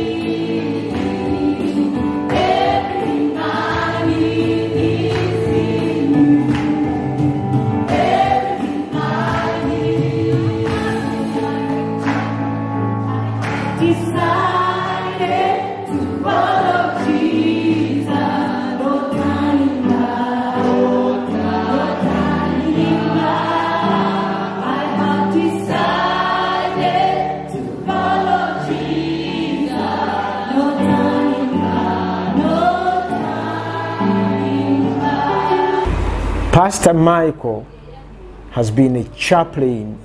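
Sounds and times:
choir singing gospel: 0.0 - 38.6
low sustained accompaniment notes: 35.8 - 39.8.

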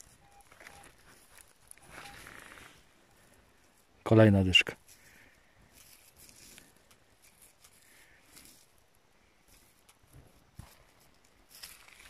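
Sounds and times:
gloved fingers handling coin: 4.8 - 12.0.

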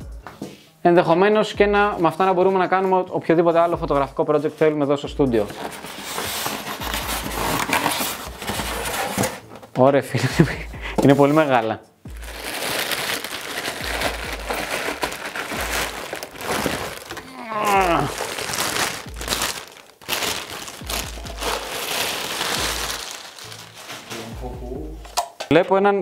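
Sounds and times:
background music with low beat: 0.0 - 26.0
plastic packaging crinkling: 5.4 - 9.4, 12.1 - 24.4.

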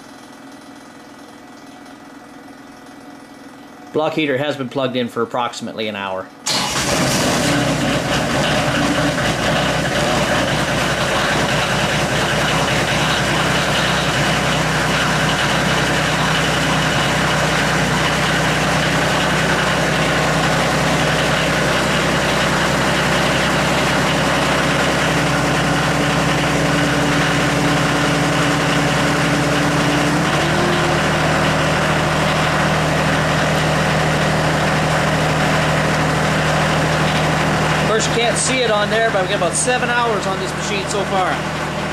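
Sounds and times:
diesel tractor idling: 6.4 - 41.9.

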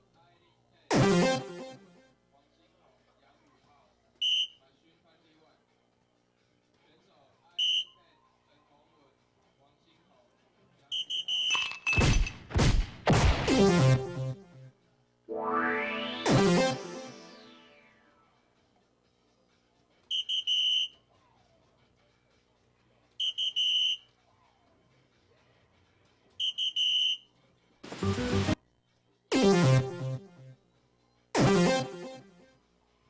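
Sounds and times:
loud noisy sound effect: 0.9 - 1.8, 13.1 - 14.4, 15.3 - 18.1
electronic crashing strokes: 15.3 - 18.0
high electronic beeps: 15.3 - 18.0.

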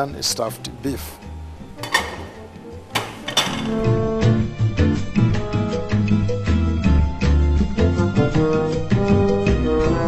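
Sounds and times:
quiet background music: 0.0 - 10.0
ceramic plates clinking on steel: 1.8 - 4.0.

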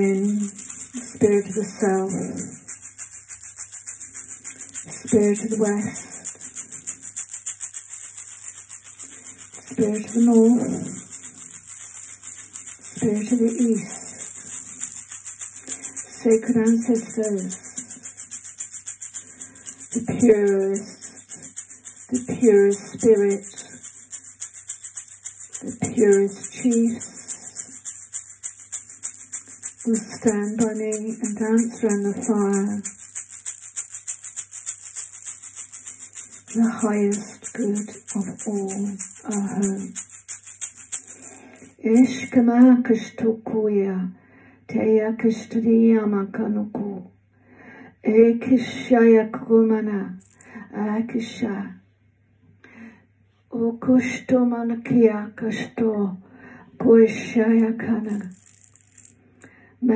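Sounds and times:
hand drum fast rhythm: 0.0 - 42.3
fast percussion beat: 0.0 - 42.5, 50.2 - 50.5, 57.6 - 59.1.

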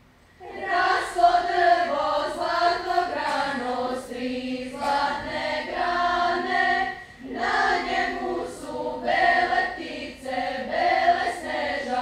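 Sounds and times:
girls' choir singing: 0.4 - 12.0.

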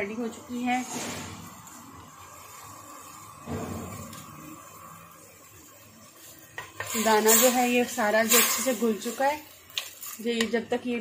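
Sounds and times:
spoon stirring in steel pot: 6.1 - 8.8.

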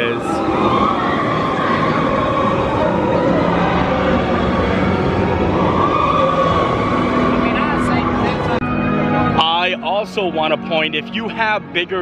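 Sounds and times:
roller coaster wheels roaring on track: 0.0 - 8.6.

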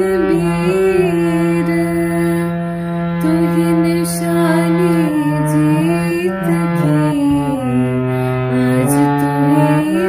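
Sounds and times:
harmonium playing slow melody: 0.0 - 10.0
person singing: 0.0 - 10.0.

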